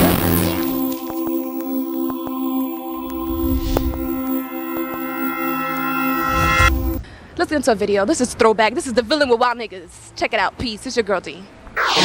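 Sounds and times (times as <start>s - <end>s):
synthesizer drone chord: 0.0s - 7.0s.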